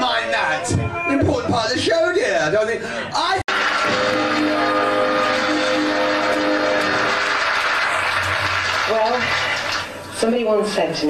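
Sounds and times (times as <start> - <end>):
audience applause: 3.5 - 10.0
held music chords: 3.8 - 7.3.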